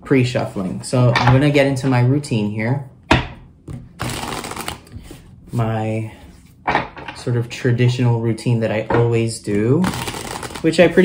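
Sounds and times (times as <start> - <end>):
cards riffle-shuffled: 4.0 - 5.2, 9.8 - 11.0.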